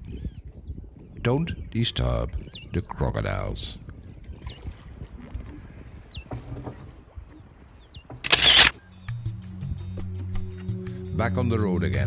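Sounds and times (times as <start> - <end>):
light water noise: 3.8 - 8.6.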